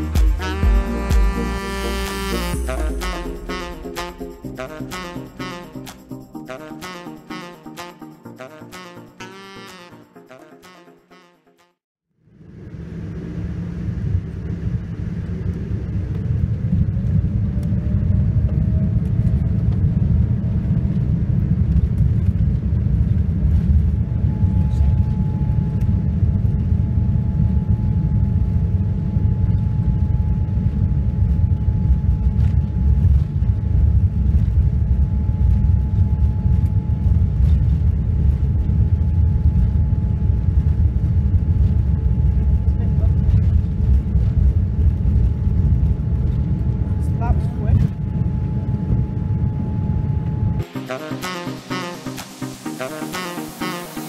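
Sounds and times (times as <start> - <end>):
faint rising whine: 12.2 - 50.9
airliner cabin rumble: 12.3 - 50.7.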